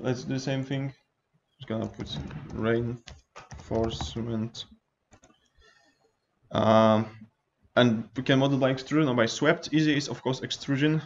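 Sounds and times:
keyboard keystrokes: 0:01.8 - 0:04.3
mouse clicks: 0:05.1 - 0:05.4.

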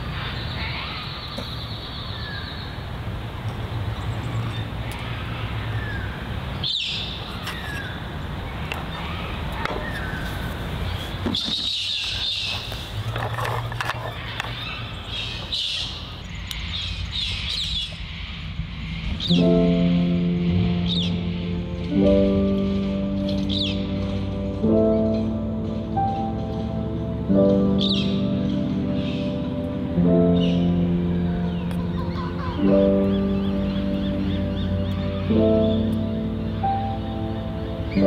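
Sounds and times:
birds chirping: 0:00.0 - 0:38.0
background music held notes: 0:19.0 - 0:38.0.

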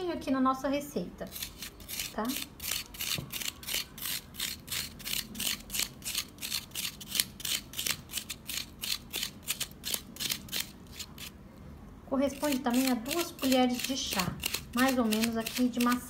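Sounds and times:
spoon scraping apple: 0:01.2 - 0:11.4, 0:12.2 - 0:16.0.

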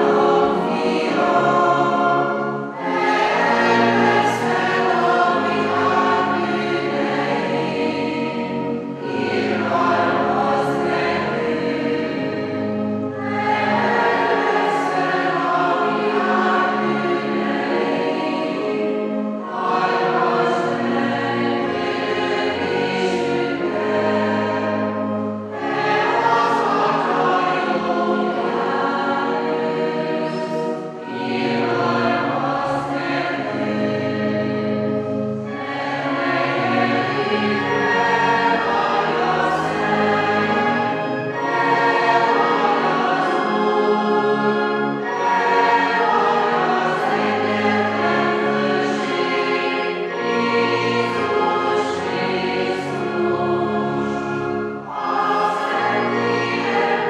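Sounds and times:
congregation singing a hymn: 0:00.0 - 0:57.0.

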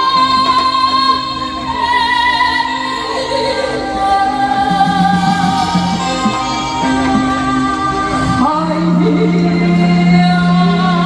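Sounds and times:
electronic keyboard accompaniment: 0:04.4 - 0:08.5.

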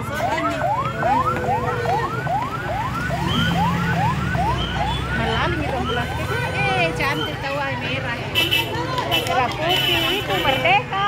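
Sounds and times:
ambulance siren yelping: 0:00.0 - 0:07.7.

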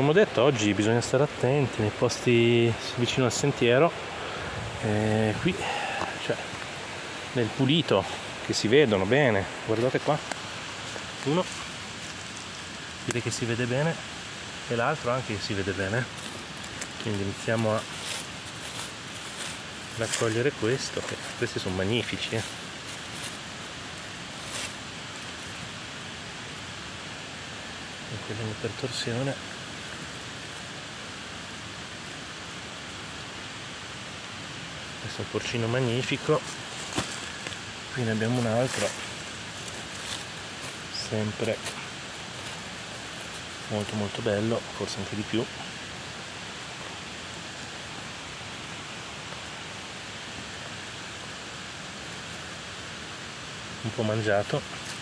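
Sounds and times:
steady rushing hiss: 0:00.0 - 0:55.0
rustling dry leaves: 0:01.7 - 0:55.0.

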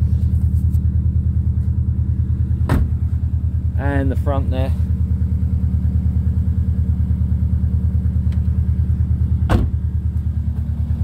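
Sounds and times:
car engine idling: 0:00.0 - 0:11.0
car door slamming: 0:02.6 - 0:03.0, 0:09.5 - 0:09.8.

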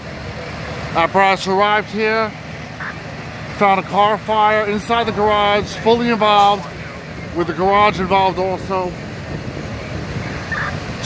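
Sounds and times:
fire engine pumps rumbling: 0:00.0 - 0:11.0.

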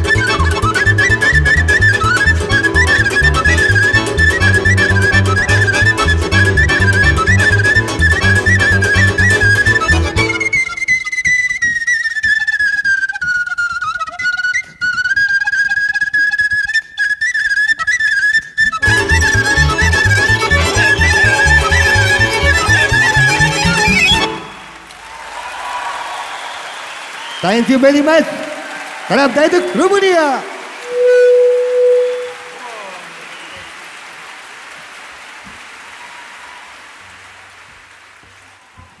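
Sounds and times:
folk band with fiddles and bass: 0:00.0 - 0:11.2, 0:18.6 - 0:24.5
wooden flute folk melody: 0:00.0 - 0:24.8, 0:30.8 - 0:33.7
audience applause: 0:19.0 - 0:39.0
loud held note with downward glide: 0:30.8 - 0:32.8.

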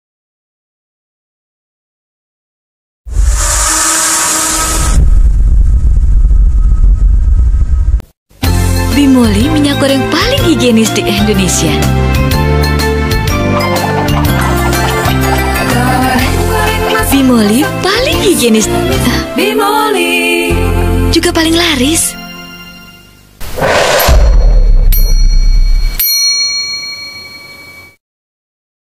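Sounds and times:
bright hiss: 0:03.1 - 0:05.0
deep rumble: 0:03.1 - 0:08.1, 0:23.4 - 0:26.0
bell ding: 0:24.4 - 0:28.0.

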